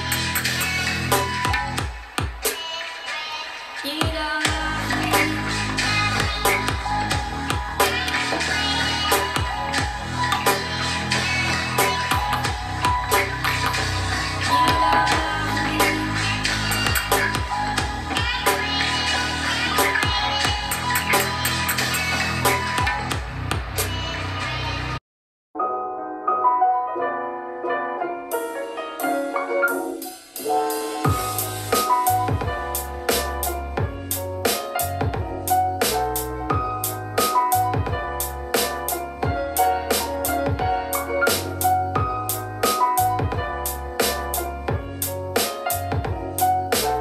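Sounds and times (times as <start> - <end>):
bass-heavy music with steady beat: 0.0 - 2.6, 4.0 - 25.0, 29.0 - 47.0
lighter music track: 0.0 - 25.0, 25.6 - 47.0.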